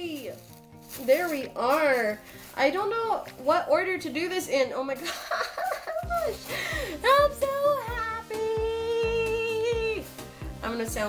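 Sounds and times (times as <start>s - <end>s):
background music with beat: 0.0s - 11.0s.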